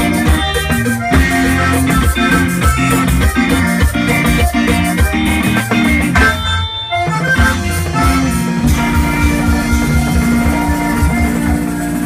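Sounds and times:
accordion: 0.0 - 12.0
bass guitar: 0.0 - 12.0
drum kit: 0.0 - 12.0
electric guitar: 0.0 - 12.0
hand percussion: 0.0 - 12.0.

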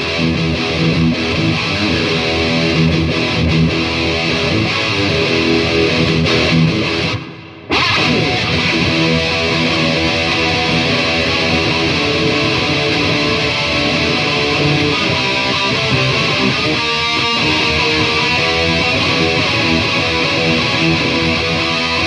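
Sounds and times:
electric guitar through amplifier: 0.0 - 22.0.

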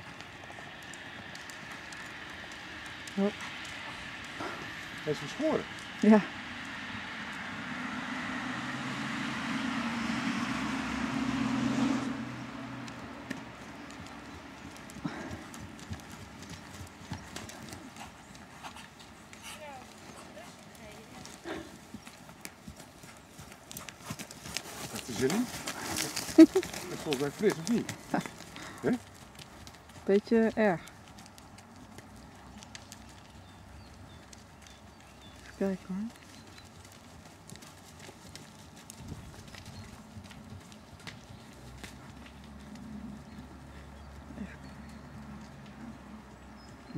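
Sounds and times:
horse hoofbeats on sand: 0.0 - 7.0, 12.7 - 46.9.

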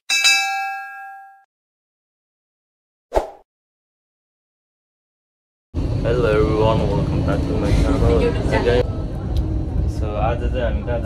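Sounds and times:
notification bell ding: 0.1 - 1.5.

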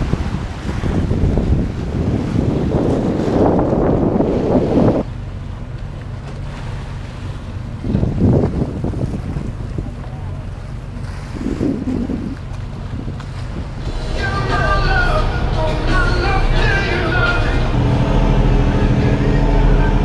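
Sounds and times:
wind on microphone: 0.0 - 5.1, 7.7 - 20.0
low ferry engine hum: 0.0 - 20.0.

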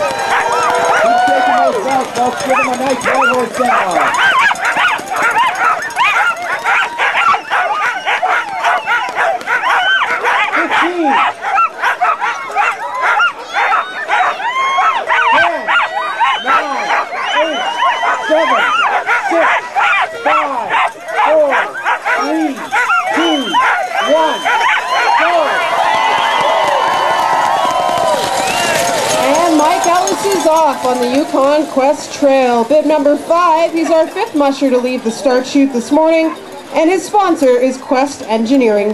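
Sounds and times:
dogs barking and yelping: 0.0 - 38.2.

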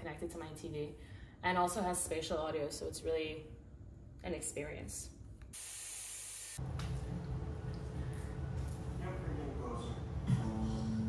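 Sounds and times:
aerosol spray hissing: 5.6 - 6.6.

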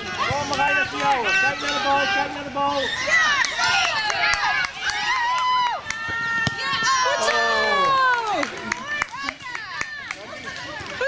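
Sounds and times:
children shouting: 0.0 - 9.8.

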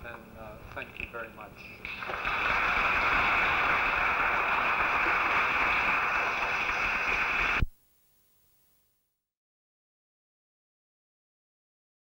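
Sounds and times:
audience applause: 1.9 - 7.6.

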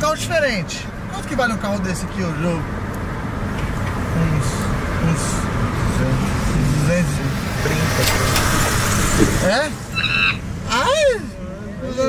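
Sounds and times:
car cabin road and engine noise: 0.0 - 12.0.

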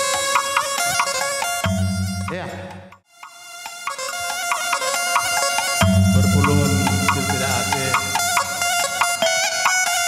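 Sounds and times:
keyboard melody over drone: 0.0 - 3.0, 4.0 - 10.0
bass notes: 1.7 - 3.0, 5.8 - 8.8.

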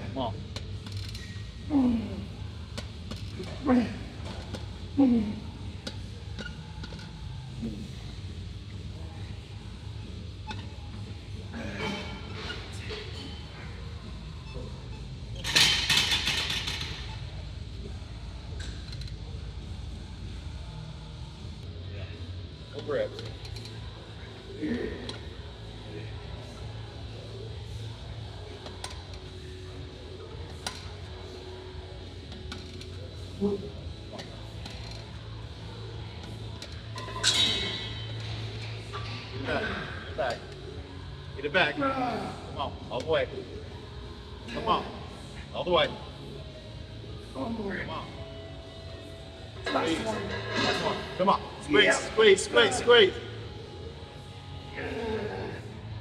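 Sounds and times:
steady low hum: 0.0 - 56.0.

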